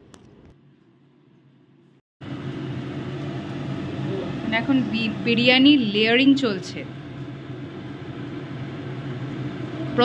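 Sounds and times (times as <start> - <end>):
steady machine hum: 2.2 - 10.0.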